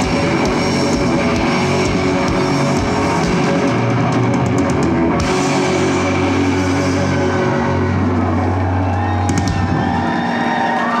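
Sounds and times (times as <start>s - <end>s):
bass guitar: 0.0s - 11.0s
drums: 0.0s - 11.0s
electric guitar droning: 0.0s - 11.0s.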